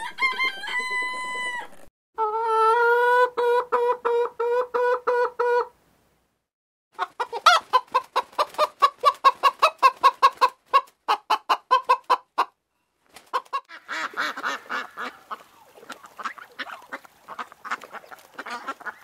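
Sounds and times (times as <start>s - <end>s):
chickens clucking: 0.0s - 5.7s, 7.0s - 19.0s
duck quacking: 13.4s - 19.0s.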